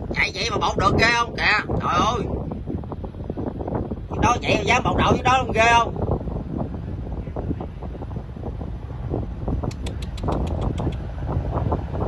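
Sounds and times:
boat diesel engine rumble: 0.0s - 12.0s
wind buffeting microphone: 0.0s - 12.0s.

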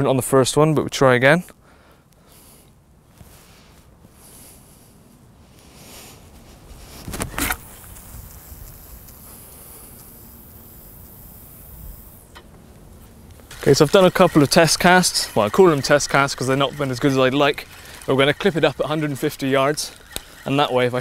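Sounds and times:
line running off reel hiss: 6.8s - 21.0s.

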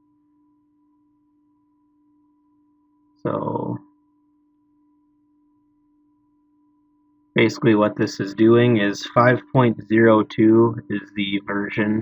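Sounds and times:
faint steady hum: 0.0s - 12.0s
thin high whine: 0.0s - 12.0s.

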